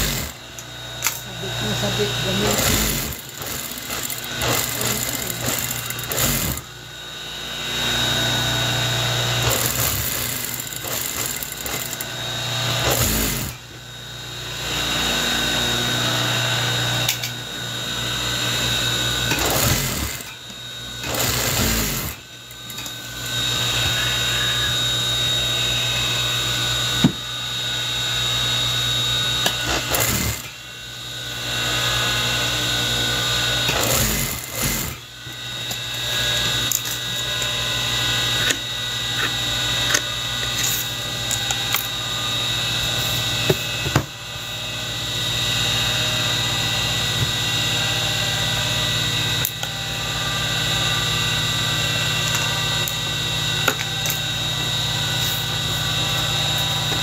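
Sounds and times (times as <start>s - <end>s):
sewing machine stitching: 0.0s - 0.4s, 2.4s - 6.6s, 9.4s - 12.0s, 12.8s - 13.6s, 19.3s - 20.3s, 21.0s - 22.2s, 29.7s - 30.4s, 33.7s - 35.0s.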